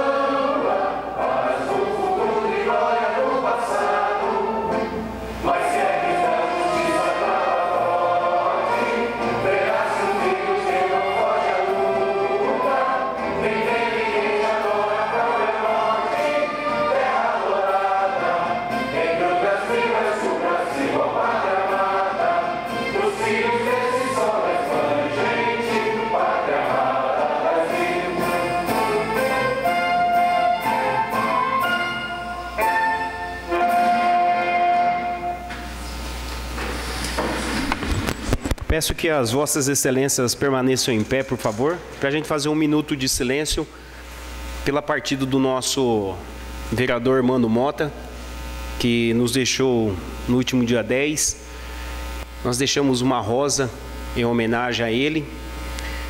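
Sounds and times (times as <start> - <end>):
choir singing with orchestra: 0.0 - 35.7.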